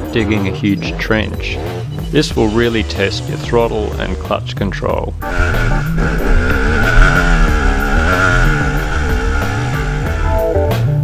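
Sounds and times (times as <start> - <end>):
background music: 0.0 - 11.0
dirt bike engine revving: 5.2 - 10.6.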